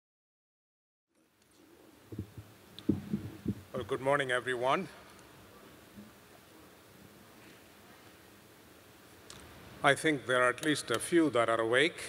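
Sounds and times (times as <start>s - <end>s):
soft low thumps on microphone: 2.1s - 3.8s
man speaking: 3.7s - 5.0s, 9.8s - 12.0s.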